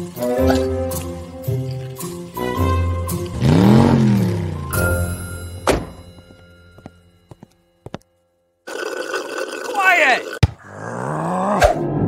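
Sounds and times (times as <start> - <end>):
background music: 0.0 - 8.6
sharp thunk: 5.6 - 6.1.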